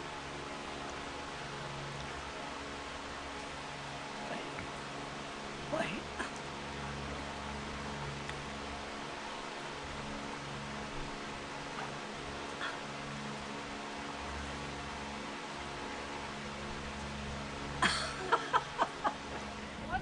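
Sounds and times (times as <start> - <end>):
low mechanical hum: 0.0 - 20.0.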